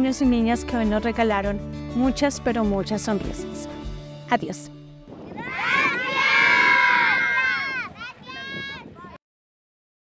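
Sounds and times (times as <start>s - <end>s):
children shouting and cheering: 5.2s - 9.2s.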